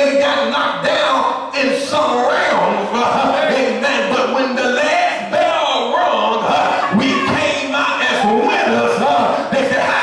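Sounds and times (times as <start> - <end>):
man preaching into microphone: 0.0 - 10.0.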